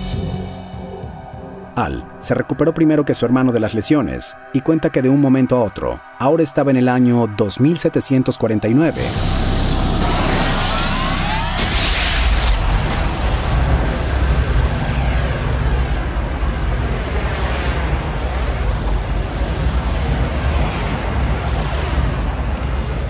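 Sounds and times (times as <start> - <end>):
deep rumble: 8.9 - 23.0
rising whooshing sweeps: 8.9 - 23.0
burst of hiss: 11.1 - 15.8.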